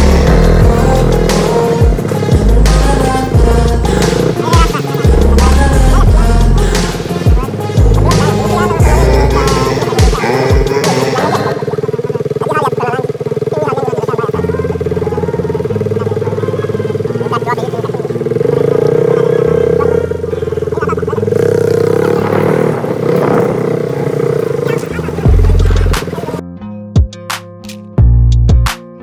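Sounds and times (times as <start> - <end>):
motorcycle engine running: 0.0 - 26.4
voices in the street: 0.0 - 26.6.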